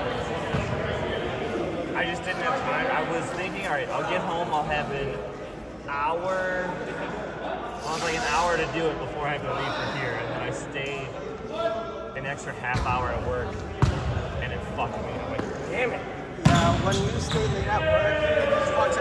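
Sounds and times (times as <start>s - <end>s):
players' voices in a gym: 0.0s - 19.0s.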